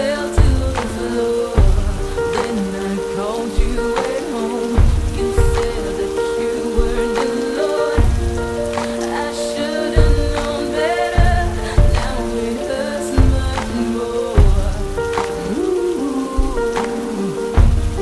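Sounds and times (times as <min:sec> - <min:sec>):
rain falling: 0:00.0 - 0:18.0
song with held chords: 0:00.0 - 0:18.0.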